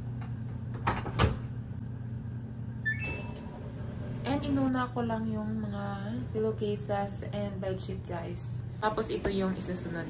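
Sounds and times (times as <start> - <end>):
electronic control panel beeps: 2.8 - 3.6.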